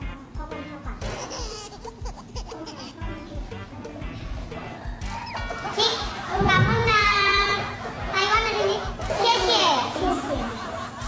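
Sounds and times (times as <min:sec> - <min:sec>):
high-pitched child-like vocalising: 0:01.0 - 0:03.6.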